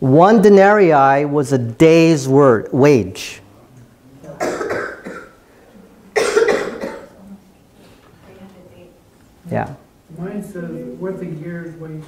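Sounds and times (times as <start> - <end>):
person coughing: 4.4 - 5.4, 6.2 - 7.2.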